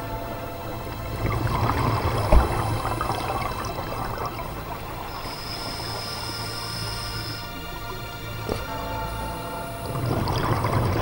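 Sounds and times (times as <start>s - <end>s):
steady low hum: 0.0s - 11.0s
underwater bubbling and crackling: 0.0s - 11.0s.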